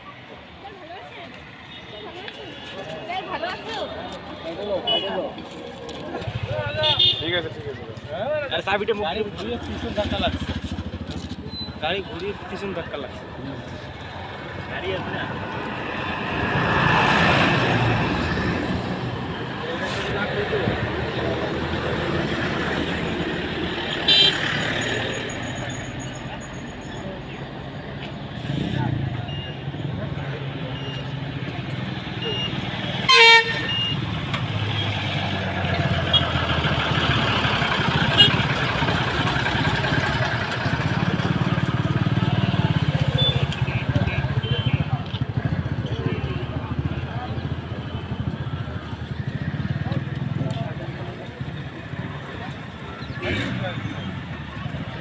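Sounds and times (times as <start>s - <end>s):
crowd voices: 0.0s - 55.0s
road traffic: 0.0s - 55.0s
vehicle horn toots: 6.8s - 7.3s, 24.1s - 24.4s, 33.0s - 34.0s.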